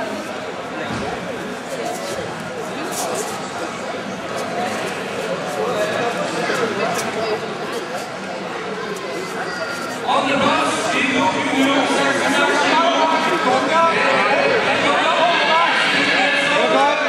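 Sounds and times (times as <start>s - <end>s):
crowd chatter and calls: 0.0s - 17.0s.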